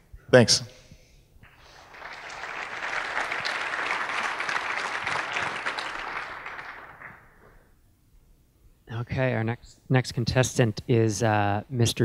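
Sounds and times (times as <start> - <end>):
audience applauding: 1.4 - 7.6.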